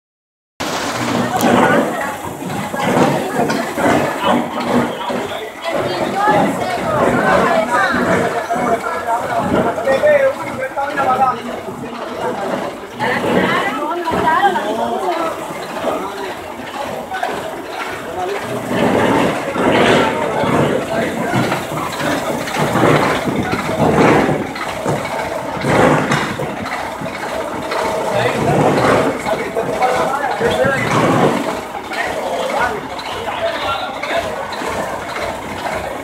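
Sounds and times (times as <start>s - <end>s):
people talking and calling out: 0.6s - 36.0s
rough noise with low hum: 0.6s - 36.0s.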